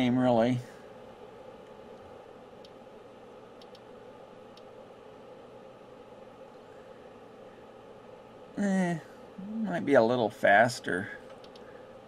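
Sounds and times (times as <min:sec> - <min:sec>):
steady hum and hiss: 0:00.0 - 0:12.0
soft clicks of controls turning: 0:01.6 - 0:02.8, 0:03.6 - 0:03.9, 0:04.5 - 0:04.8, 0:11.2 - 0:11.8.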